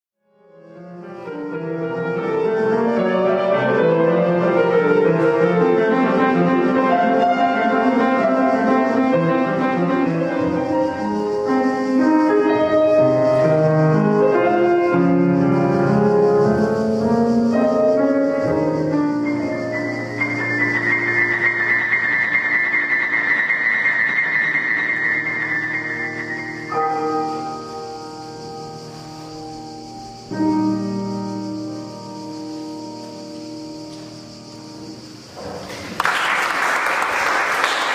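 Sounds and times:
classical grand piano: 0:00.3 - 0:37.9.

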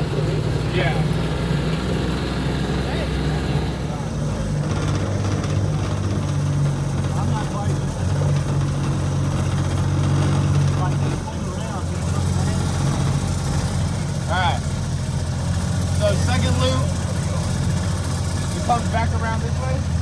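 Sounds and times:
golf cart engine running: 0:00.0 - 0:20.0.

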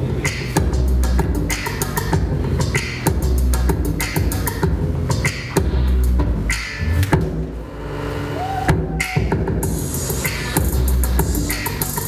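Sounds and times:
dance music with heavy bass: 0:00.0 - 0:12.0.

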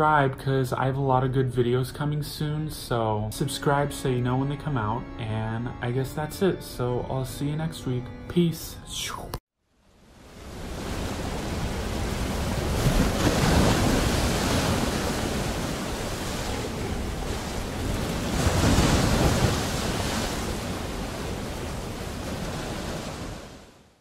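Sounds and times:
ocean waves breaking: 0:10.0 - 0:23.9.

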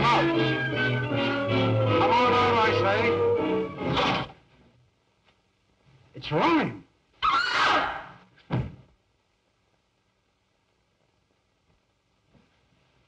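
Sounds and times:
film score with held chords: 0:00.0 - 0:04.3.

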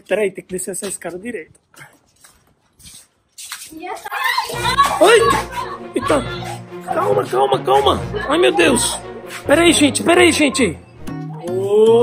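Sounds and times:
person speaking: 0:03.8 - 0:10.8.

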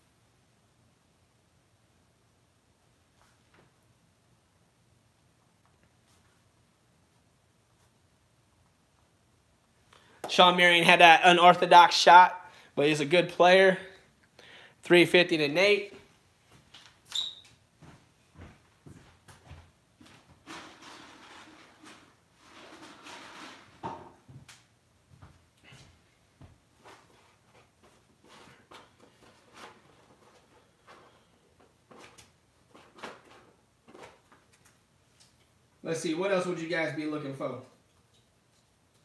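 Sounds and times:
soft rustling: 0:05.6 - 0:08.1.

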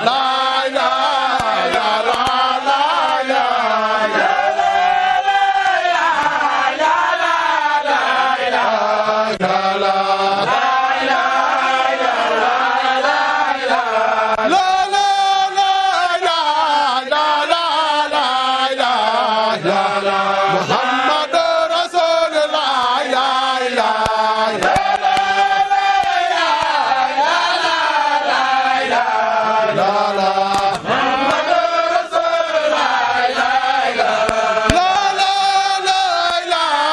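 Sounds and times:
crowd chanting together: 0:00.0 - 0:36.9.

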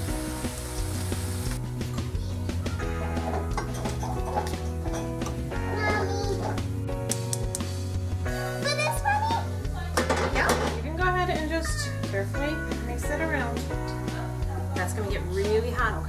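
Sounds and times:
background music with bass line: 0:00.0 - 0:16.0.

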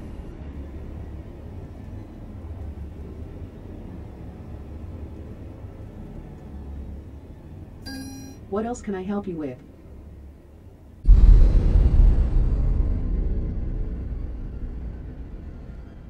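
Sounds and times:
low dark rumbling drone: 0:00.0 - 0:08.5, 0:09.6 - 0:16.0
smart speaker chime: 0:07.9 - 0:08.4
smart speaker voice: 0:08.5 - 0:09.6.

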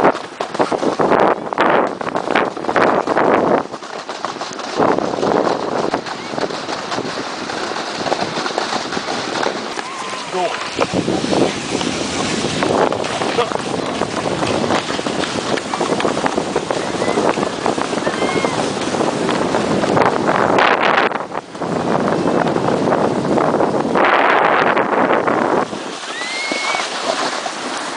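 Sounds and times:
ski runners hissing over snow: 0:00.0 - 0:20.8, 0:23.4 - 0:27.9
wind buffeting microphone: 0:00.0 - 0:27.9.

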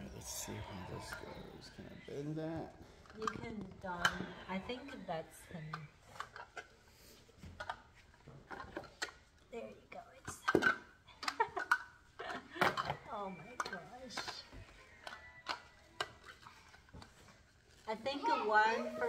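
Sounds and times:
toy blocks clicking and knocking: 0:10.2 - 0:17.2.

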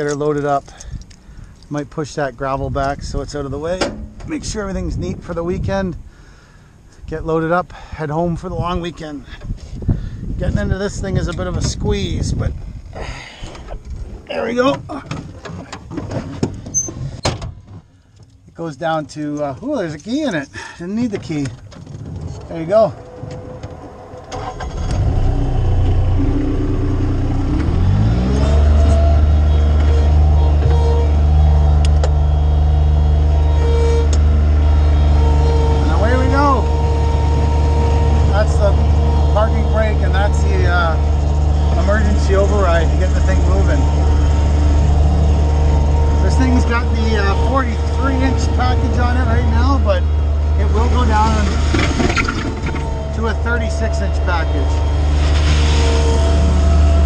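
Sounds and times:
diesel engine starting and revving: 0:22.2 - 0:57.0.

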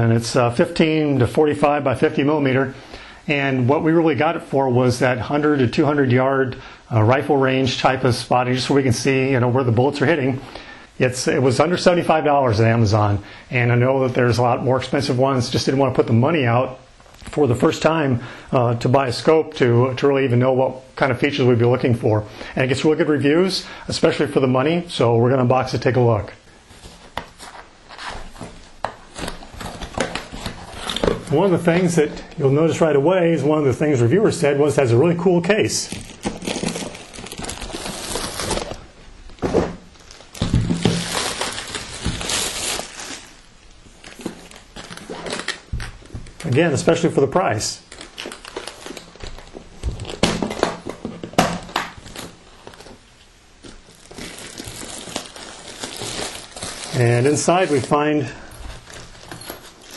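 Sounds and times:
plastic wrapping crinkling: 0:26.6 - 0:32.9, 0:34.4 - 0:59.9.

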